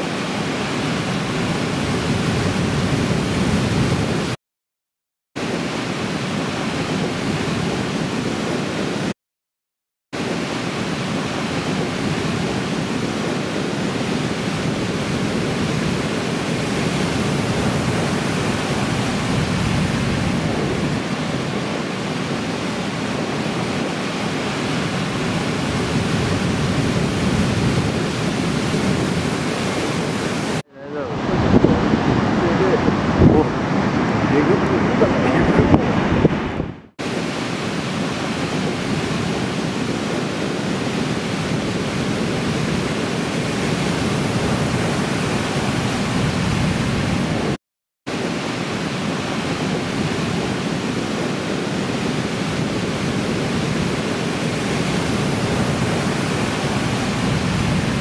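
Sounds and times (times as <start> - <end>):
ocean surf breaking: 0.0 - 4.4, 5.4 - 9.1, 10.2 - 58.0.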